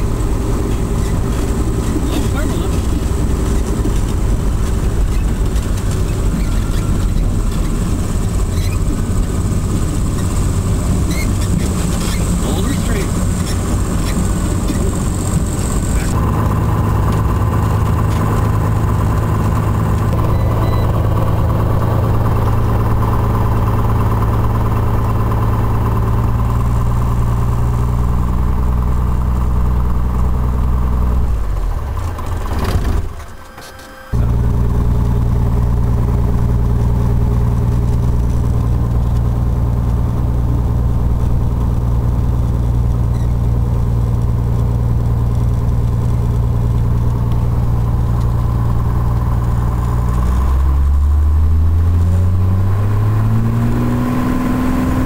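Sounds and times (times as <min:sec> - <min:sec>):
aircraft engine and propeller: 0:00.0 - 0:55.0.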